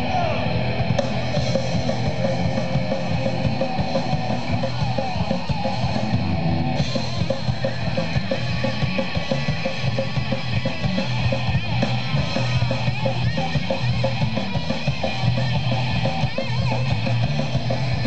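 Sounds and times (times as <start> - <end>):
drum kit steady beat: 0.0 - 18.0
electric guitars: 0.0 - 18.0.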